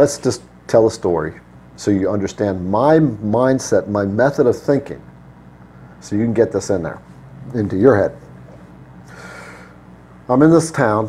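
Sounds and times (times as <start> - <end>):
faint low hum: 0.0 - 11.0
man breathing in: 9.0 - 9.8.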